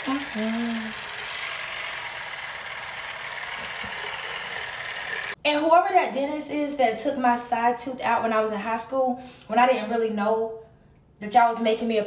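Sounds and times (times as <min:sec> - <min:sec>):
water flosser buzzing hiss: 0:00.0 - 0:05.4.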